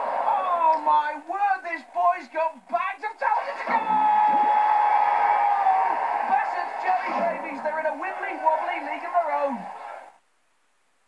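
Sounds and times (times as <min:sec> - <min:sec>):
long held shout: 0:03.2 - 0:10.1
cartoon voices: 0:03.3 - 0:04.6.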